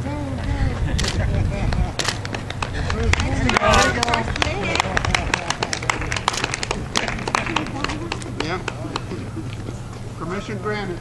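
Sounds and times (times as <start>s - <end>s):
voices: 0.0s - 11.0s
person laughing: 0.5s - 2.0s
spectators clapping: 1.7s - 9.2s.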